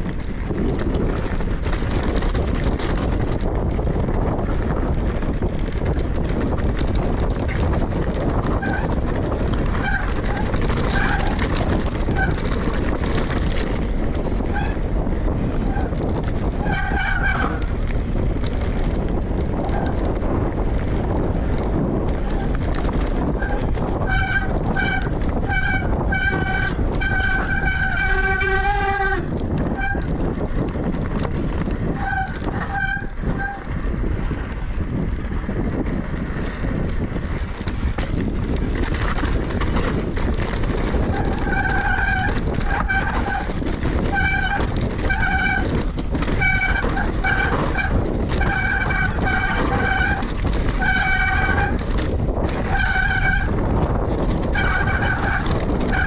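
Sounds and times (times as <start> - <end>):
tyres rumbling over gravel: 0.0 - 56.0
wind rushing on microphone: 0.0 - 56.0
high-pitched bike squeals: 15.6 - 17.8, 23.2 - 30.1, 31.9 - 33.8, 40.9 - 51.8, 52.6 - 53.6, 54.4 - 56.0.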